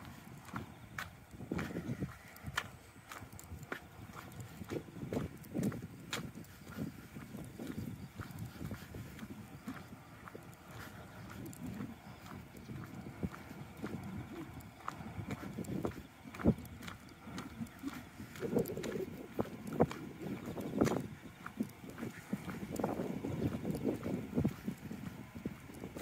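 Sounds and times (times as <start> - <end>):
footsteps on concrete: 0.0 - 26.0.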